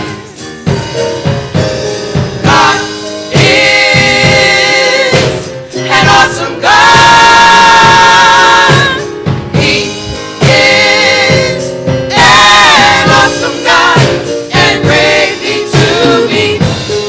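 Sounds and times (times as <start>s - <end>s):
gospel choir singing: 0.0s - 17.0s.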